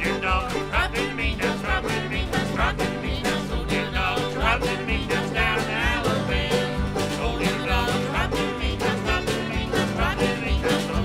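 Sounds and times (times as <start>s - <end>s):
harmonica lead: 0.0s - 11.0s
plucked strings: 0.0s - 11.0s
strummed acoustic guitar: 0.0s - 11.0s.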